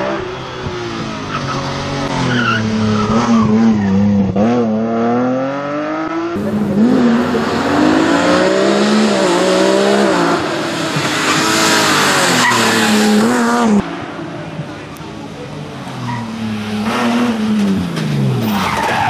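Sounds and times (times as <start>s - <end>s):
rally car engine revving: 0.0s - 19.0s.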